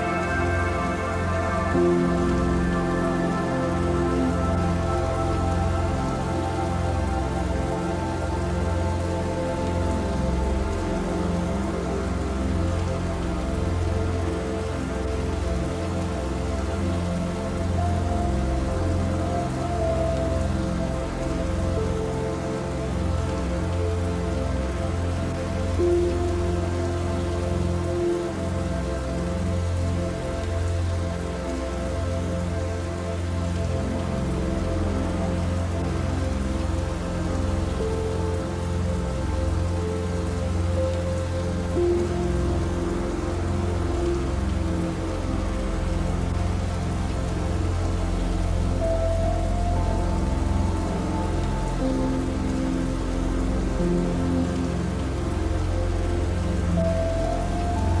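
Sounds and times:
soft relaxation music: 0:00.0 - 0:58.0
steady rain falling: 0:00.0 - 0:58.0.

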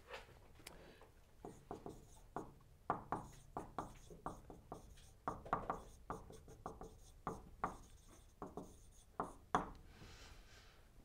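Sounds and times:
marker squeaking on whiteboard: 0:01.4 - 0:09.7.

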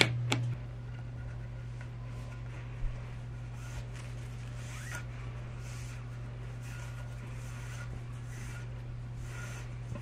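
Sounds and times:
steady low hum: 0:00.0 - 0:10.0
sheet rustling: 0:02.1 - 0:08.6.

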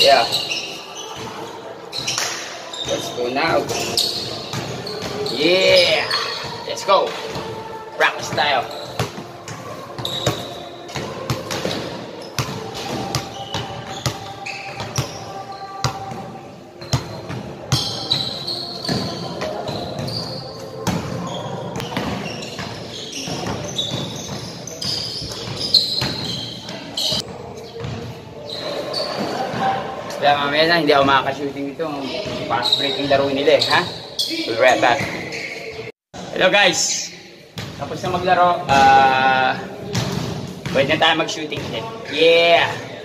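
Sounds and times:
basketballs bouncing on court: 0:02.9 - 0:15.2, 0:15.8 - 0:28.2, 0:32.1 - 0:33.1, 0:37.6 - 0:39.1, 0:39.8 - 0:41.9.

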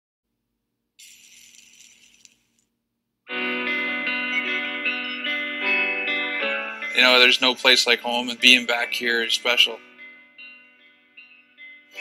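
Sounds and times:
high jingling shimmer: 0:01.0 - 0:02.6.

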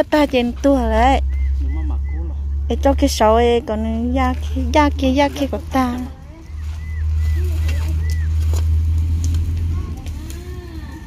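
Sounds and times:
steady low rumble: 0:00.0 - 0:11.0
faint distant voices: 0:00.8 - 0:11.0.

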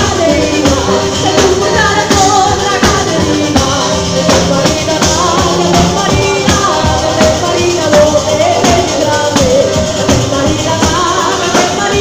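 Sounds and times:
accordion: 0:00.0 - 0:12.0
woman singing: 0:00.0 - 0:12.0.

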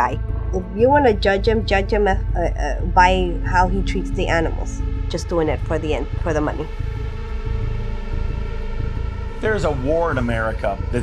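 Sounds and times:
droning chord: 0:00.0 - 0:11.0
low pulsing bass: 0:00.0 - 0:11.0.

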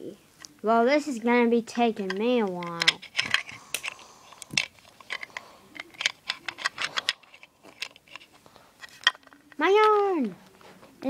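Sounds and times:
plastic toy pieces clicking: 0:01.9 - 0:09.6.

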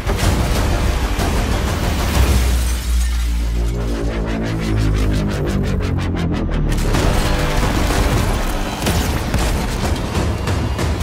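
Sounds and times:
crashing breaking debris: 0:00.0 - 0:03.8, 0:06.8 - 0:11.0
trailer score: 0:00.0 - 0:11.0.

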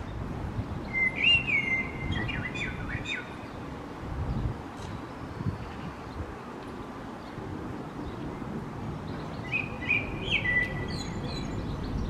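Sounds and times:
songbird singing: 0:00.0 - 0:12.0.

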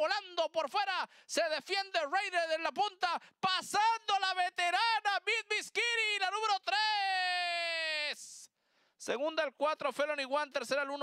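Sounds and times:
race caller shouting: 0:01.8 - 0:08.3.

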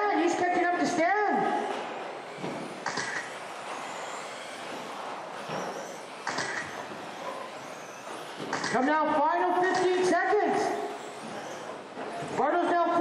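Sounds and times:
high electric motor whines: 0:00.8 - 0:13.0
rc car tyre noise: 0:01.5 - 0:12.6.

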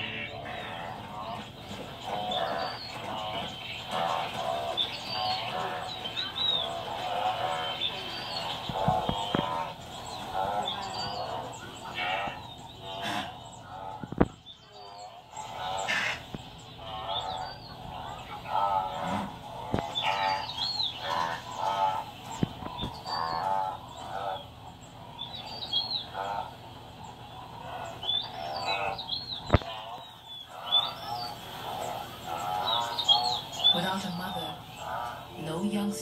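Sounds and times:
birds chirping: 0:00.0 - 0:36.0.

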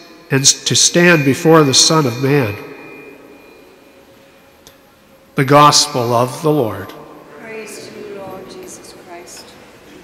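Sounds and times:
man's voice reverberating: 0:00.0 - 0:03.3, 0:05.3 - 0:08.0
faint steady high tones: 0:00.0 - 0:09.6.

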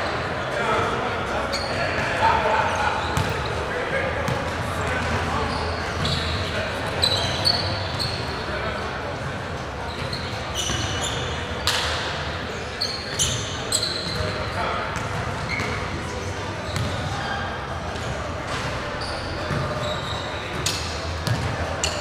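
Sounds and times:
sneaker squeaks: 0:01.4 - 0:03.7, 0:04.3 - 0:08.8, 0:09.6 - 0:22.0.

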